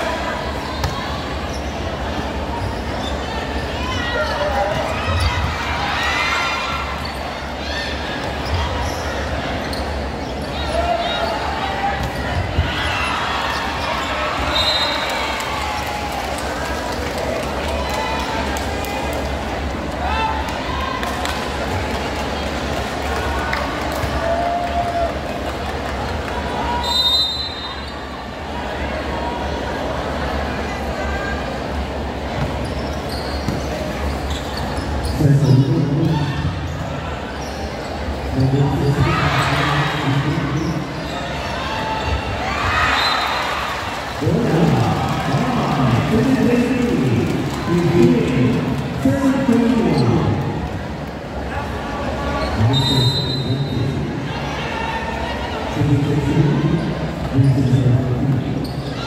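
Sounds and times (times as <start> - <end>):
crowd talking and shouting: 0.0 - 59.0.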